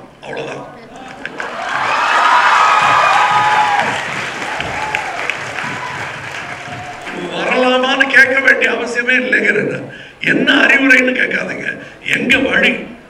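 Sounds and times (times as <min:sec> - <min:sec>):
audience applause: 0:01.0 - 0:07.8
voices shouting: 0:01.2 - 0:07.7.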